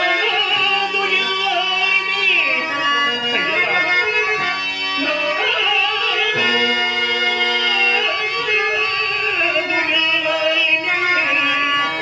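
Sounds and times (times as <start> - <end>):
harmonium notes: 0.0 - 12.0
person singing ornamented verse: 0.0 - 12.0.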